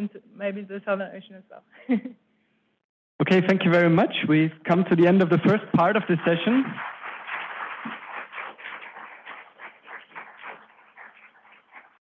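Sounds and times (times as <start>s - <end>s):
audience applauding: 5.6s - 11.0s.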